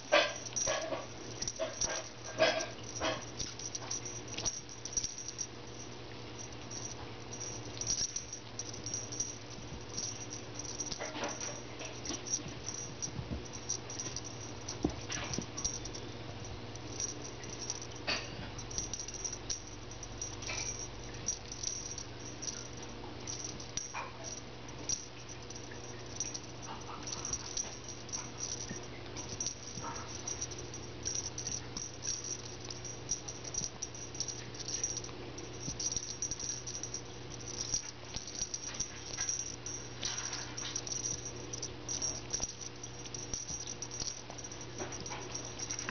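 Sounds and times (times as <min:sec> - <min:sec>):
steady low hum: 0:00.0 - 0:45.9.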